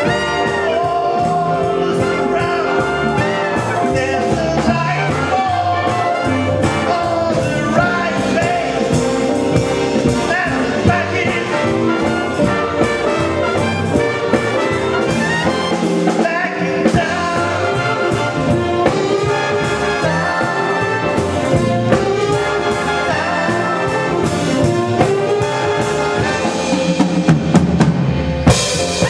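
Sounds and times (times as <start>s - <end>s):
man singing: 0.0s - 13.6s, 16.0s - 26.8s
big band playing swing: 0.0s - 29.0s
walking double bass: 0.0s - 29.0s.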